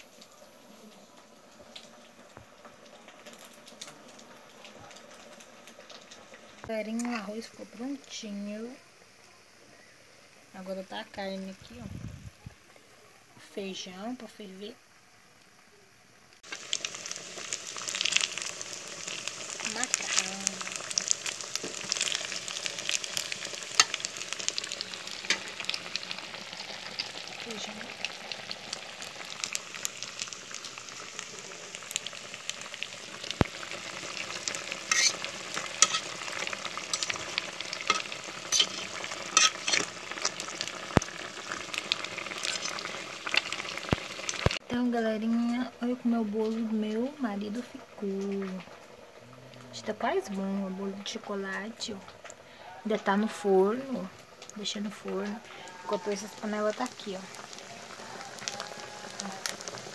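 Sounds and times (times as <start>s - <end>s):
meat sizzling and crackling: 0.0s - 59.9s.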